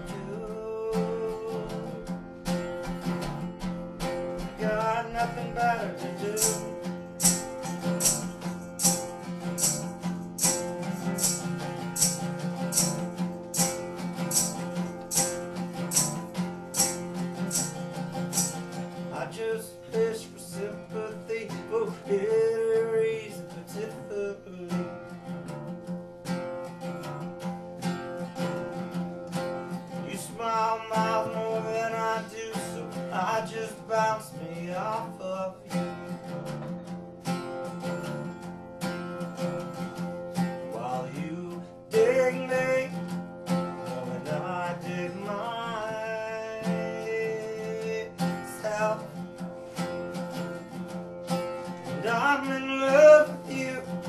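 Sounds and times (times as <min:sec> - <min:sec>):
man singing: 0:00.0 - 0:03.1, 0:04.3 - 0:09.7, 0:18.3 - 0:25.5, 0:29.9 - 0:36.1, 0:40.6 - 0:49.4, 0:51.6 - 0:54.0
acoustic guitar strumming: 0:00.0 - 0:54.0.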